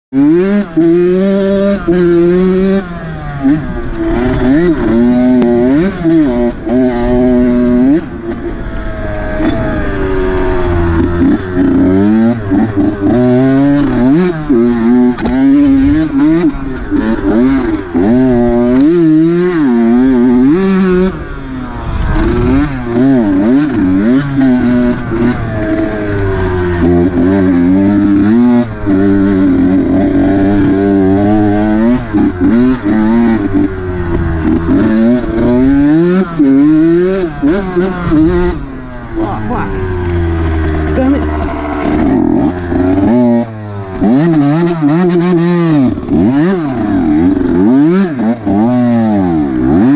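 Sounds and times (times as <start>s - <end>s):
dirt bike engine revving: 0.1s - 49.9s.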